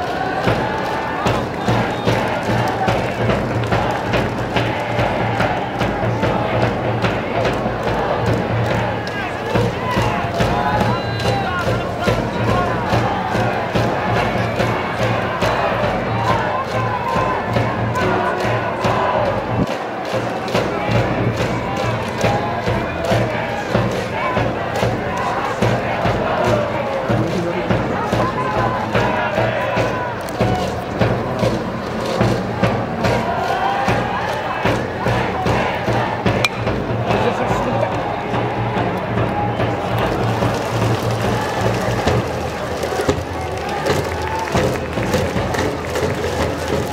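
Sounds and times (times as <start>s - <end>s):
crowd chanting and cheering: 0.0s - 46.9s.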